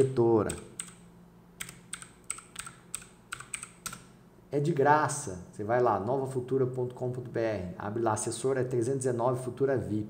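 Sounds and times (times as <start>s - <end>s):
computer keyboard typing: 0.0s - 1.0s, 1.6s - 4.1s.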